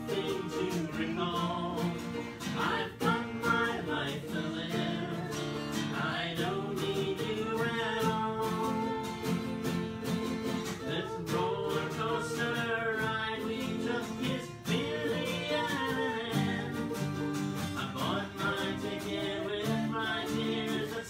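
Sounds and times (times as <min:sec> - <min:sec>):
acoustic guitar strumming: 0:00.0 - 0:21.0
man and woman singing: 0:00.0 - 0:21.0.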